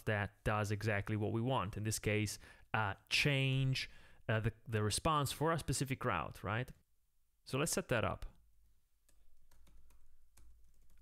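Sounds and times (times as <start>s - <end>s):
typing on keyboard: 9.0s - 11.0s.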